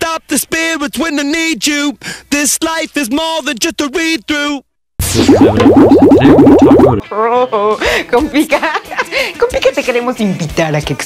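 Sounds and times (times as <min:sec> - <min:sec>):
warbling rising boings: 0:05.0 - 0:07.0.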